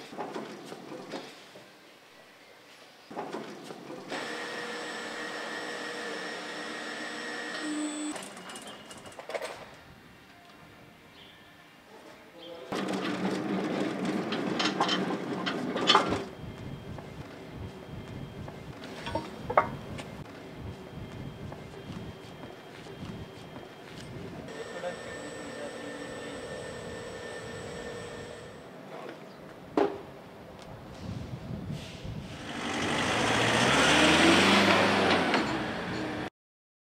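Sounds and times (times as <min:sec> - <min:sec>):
hydraulic power units humming: 0:04.0 - 0:08.8, 0:12.8 - 0:28.9
vehicle engine passing close: 0:32.2 - 0:36.3.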